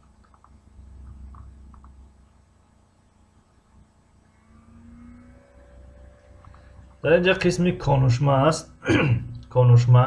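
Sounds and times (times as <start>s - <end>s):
low steady hum: 0.0s - 10.0s
faint engine drone rising: 3.4s - 10.0s.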